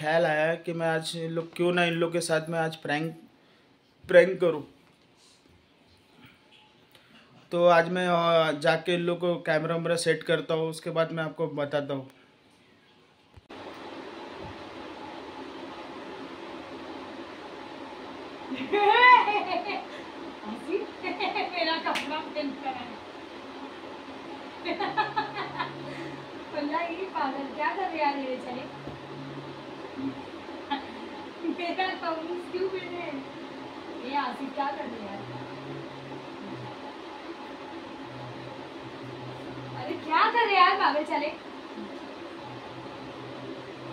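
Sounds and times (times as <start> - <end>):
room hiss: 0.0 - 43.9
faint low hum: 11.0 - 43.9.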